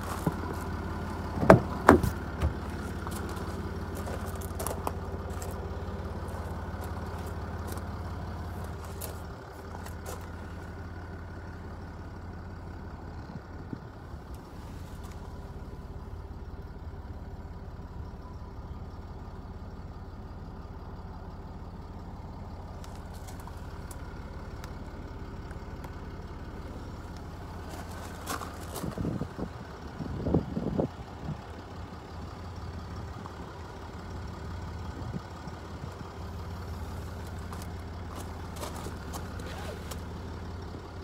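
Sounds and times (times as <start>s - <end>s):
car engine idling: 0.0s - 41.0s.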